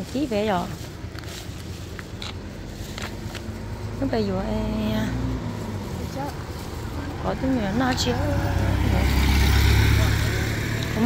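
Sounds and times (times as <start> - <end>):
minivan driving past: 1.7 - 11.0.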